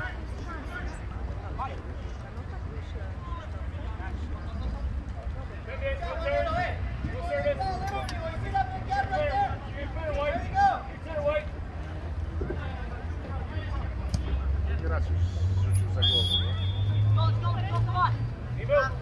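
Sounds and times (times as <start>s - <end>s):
voices talking and calling out: 0.0s - 19.0s.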